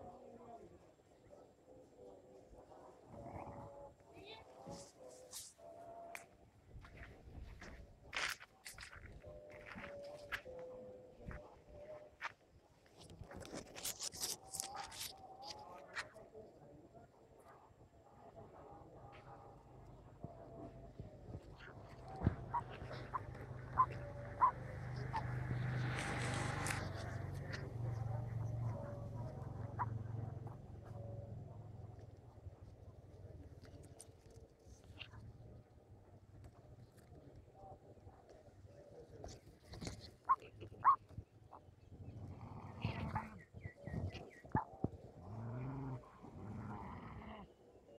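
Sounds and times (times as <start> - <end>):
low drawn-out vocal sounds: 0.0 - 5.0, 41.8 - 48.0
short animal calls: 22.0 - 27.2.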